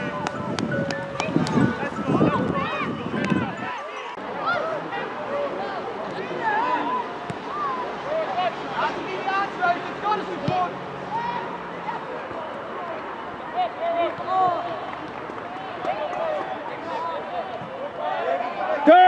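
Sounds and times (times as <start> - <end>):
distant shouts and calls: 1.5 - 19.0.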